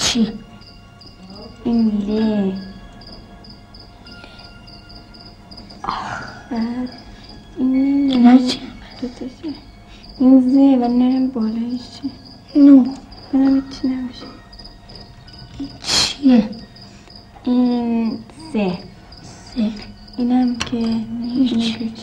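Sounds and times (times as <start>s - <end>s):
children speaking: 0.0s - 2.9s, 5.8s - 14.5s, 15.5s - 16.8s, 17.4s - 22.0s
insects chirping: 0.0s - 22.0s.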